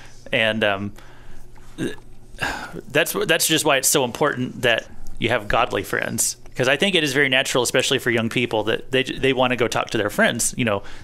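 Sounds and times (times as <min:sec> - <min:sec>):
man taking a breath: 0:01.0 - 0:01.5
man's short vocal sound: 0:01.8 - 0:02.9.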